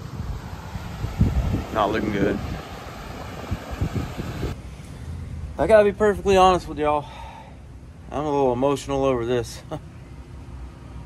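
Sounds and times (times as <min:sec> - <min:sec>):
low bumps: 0:00.0 - 0:04.6
wind buffeting microphone: 0:00.0 - 0:04.6.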